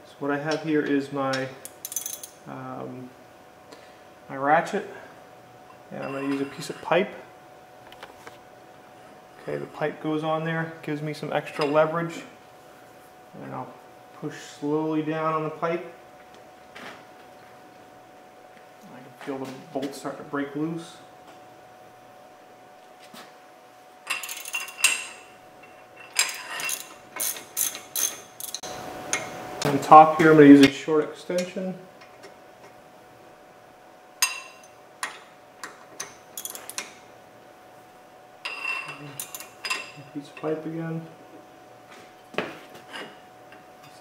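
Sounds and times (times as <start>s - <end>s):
metal tools clinking on caliper: 1.3s - 2.4s, 6.0s - 6.9s, 24.1s - 28.6s, 36.4s - 36.9s.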